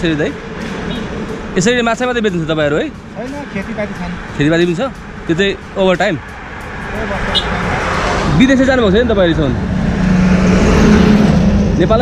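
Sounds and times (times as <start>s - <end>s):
vehicle passing on road: 0.0s - 12.0s.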